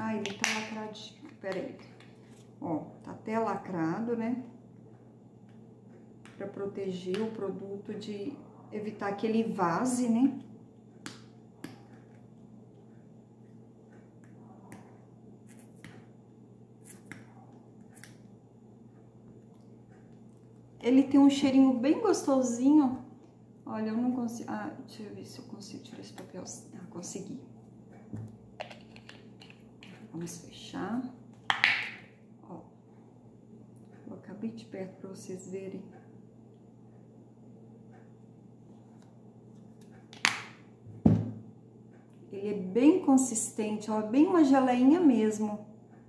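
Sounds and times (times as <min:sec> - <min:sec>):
low steady hum: 0:00.0 - 0:46.0.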